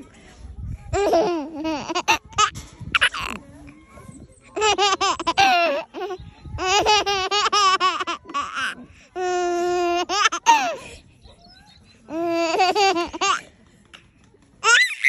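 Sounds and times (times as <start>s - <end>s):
baby laughing: 4.6s - 10.9s, 12.1s - 13.5s.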